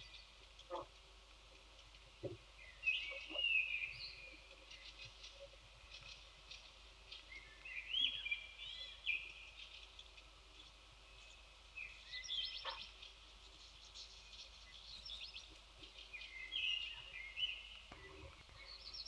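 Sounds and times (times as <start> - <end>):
faint background noise: 0.0 - 19.0.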